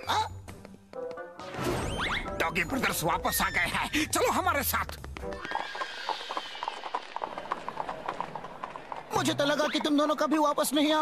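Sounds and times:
cartoon clip-clop footsteps: 0:00.3 - 0:11.0.

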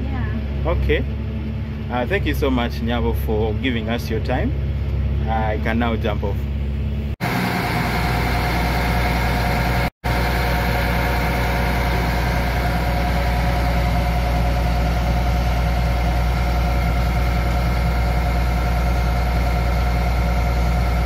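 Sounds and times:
tractor diesel engine idling: 0:00.0 - 0:21.0.

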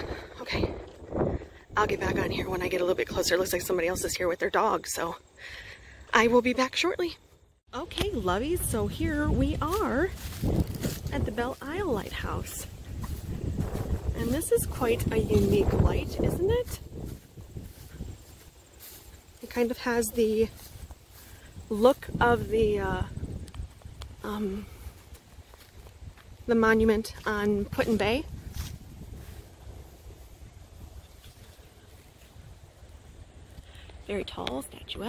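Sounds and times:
wind rumble on microphone: 0:00.0 - 0:04.5, 0:07.8 - 0:35.0.

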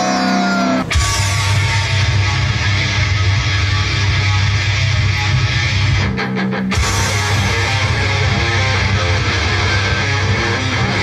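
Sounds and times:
distorted electric guitar rock music: 0:00.0 - 0:11.0.

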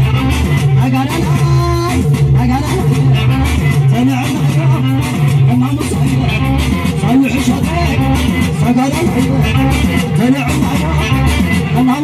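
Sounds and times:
man singing: 0:00.0 - 0:12.0.

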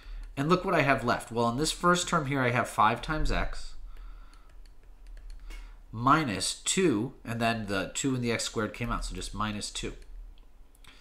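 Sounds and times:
steady low hum: 0:00.0 - 0:11.0
stylus tapping on tablet screen: 0:03.9 - 0:05.7.

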